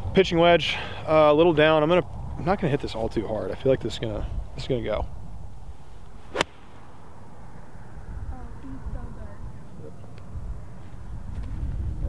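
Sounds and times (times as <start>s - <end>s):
golf club striking ball: 6.3s - 7.0s.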